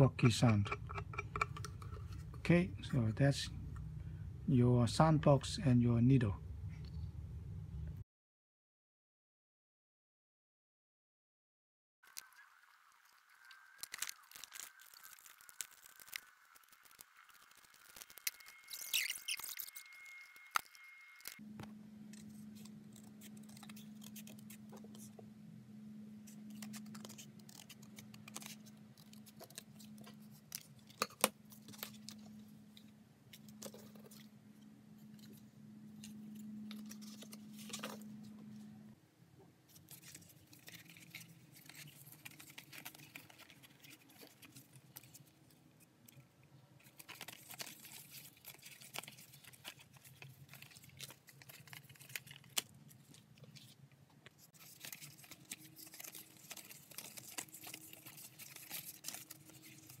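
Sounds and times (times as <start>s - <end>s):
steady low hum: 0.0s - 8.0s, 19.8s - 39.4s
card and foil rustling: 13.1s - 21.4s, 22.1s - 25.1s, 26.2s - 34.3s, 35.0s - 38.6s, 39.7s - 45.6s, 46.8s - 53.8s, 54.4s - 60.0s.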